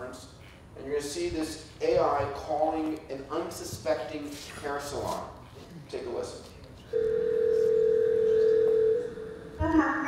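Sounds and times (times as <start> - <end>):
telephone ringback tone: 6.9 - 9.5.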